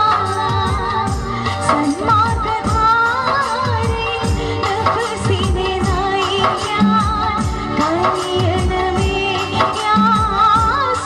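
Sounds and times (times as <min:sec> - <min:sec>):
instrumental backing: 0:00.0 - 0:11.0
steady drum beat: 0:00.0 - 0:11.0
woman singing: 0:00.0 - 0:11.0.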